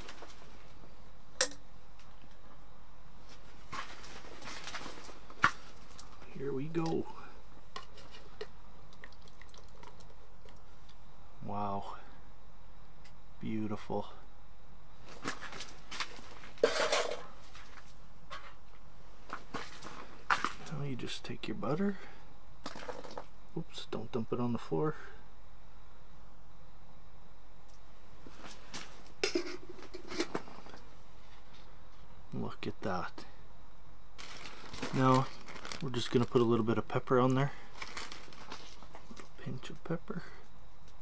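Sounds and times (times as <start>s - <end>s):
steady low hiss: 0.0s - 41.0s
rustling: 3.2s - 7.0s, 34.2s - 36.5s, 37.6s - 39.4s
camp cookware clattering: 16.6s - 17.3s.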